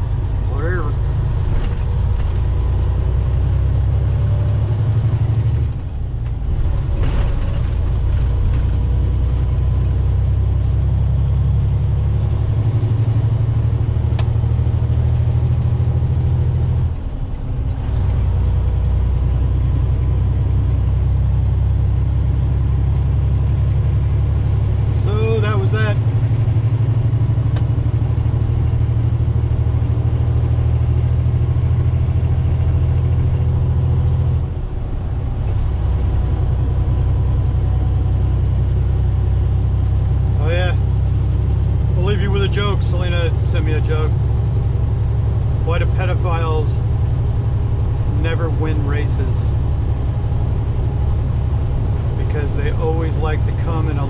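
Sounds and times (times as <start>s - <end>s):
road noise: 0.0s - 54.0s
truck engine drone: 0.0s - 54.0s.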